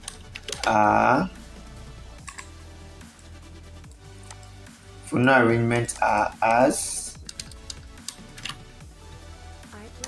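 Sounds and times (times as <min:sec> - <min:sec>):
keyboard keys clicking: 0:02.3 - 0:02.5, 0:07.2 - 0:08.6.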